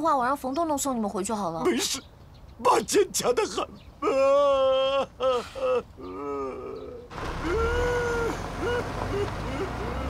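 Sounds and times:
man groaning in pain: 4.0s - 10.0s
car engine rumble: 7.1s - 10.0s.

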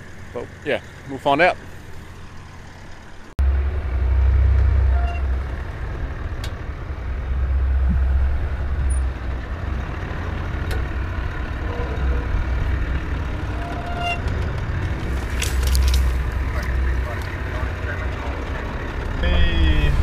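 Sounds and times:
diesel engine low rumble: 0.0s - 20.0s.

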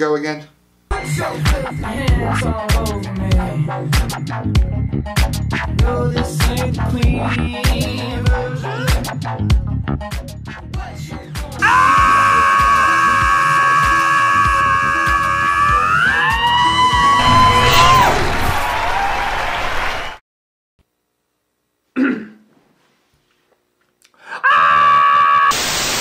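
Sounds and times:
pop song with low beat: 0.9s - 12.2s
man screaming: 11.6s - 18.4s, 24.3s - 25.6s.

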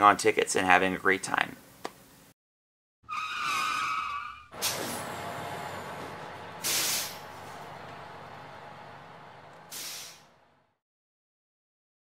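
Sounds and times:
tyre squeal: 3.1s - 4.9s.

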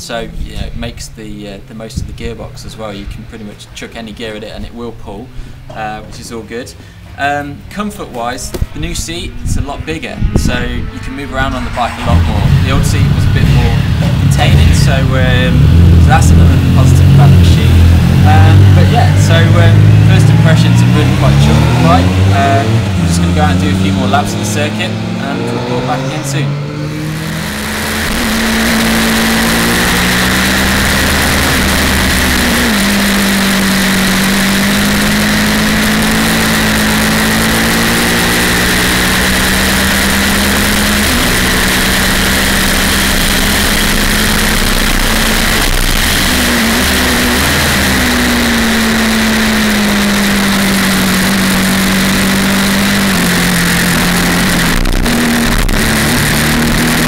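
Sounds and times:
motorcycle engine at high speed: 8.5s - 57.0s
wind rushing: 8.6s - 20.2s.

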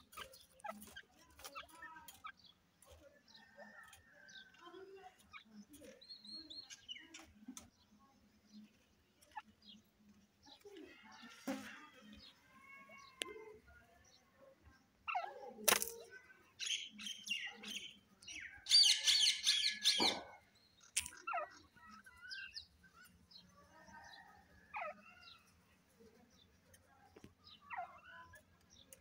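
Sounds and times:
birds chirping and whistling: 0.0s - 2.6s, 5.2s - 7.4s, 16.6s - 25.6s, 27.1s - 29.0s
birds chattering: 0.0s - 29.0s.

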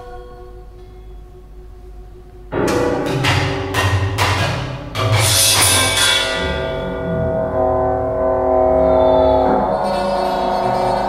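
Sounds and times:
low drone: 0.0s - 11.0s
chamber ensemble sustained chord: 5.0s - 11.0s.

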